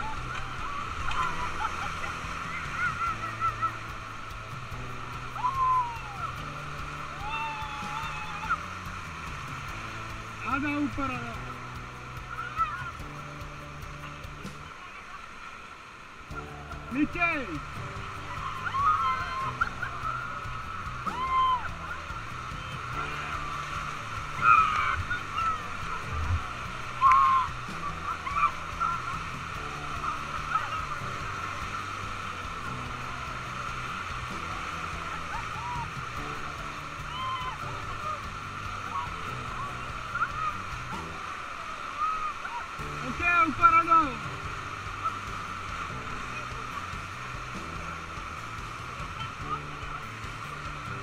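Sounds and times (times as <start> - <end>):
people whooping: 0.0 - 4.0, 5.4 - 8.8, 18.3 - 23.5, 24.3 - 26.1, 26.9 - 31.0, 35.0 - 40.7, 41.5 - 42.9
low bass line: 0.0 - 14.8, 16.3 - 41.6, 42.7 - 51.0
rapids rushing: 0.0 - 51.0.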